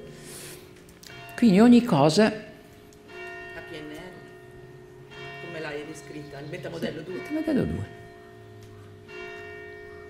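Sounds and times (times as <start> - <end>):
church bell ringing: 1.0 - 10.0.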